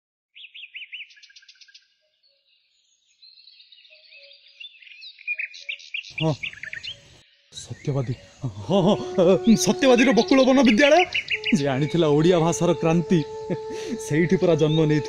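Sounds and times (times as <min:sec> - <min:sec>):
small birds chirping: 0:00.4 - 0:15.0
person's voice: 0:07.6 - 0:15.0.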